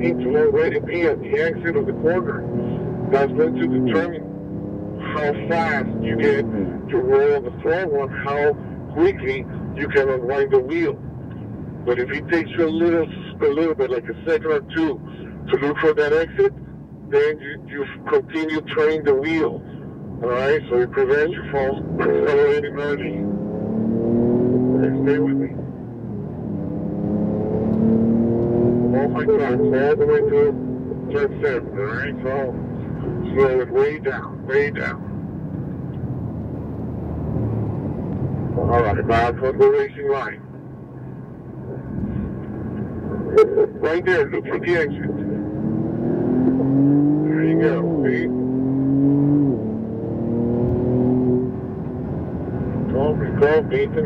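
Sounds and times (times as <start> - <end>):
car engine accelerating: 0.0 - 54.0
road noise: 0.0 - 54.0.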